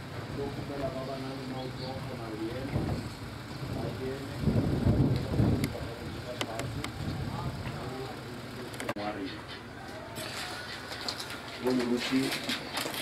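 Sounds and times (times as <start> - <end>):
people talking: 0.3 - 3.0, 3.6 - 10.6, 11.6 - 12.6.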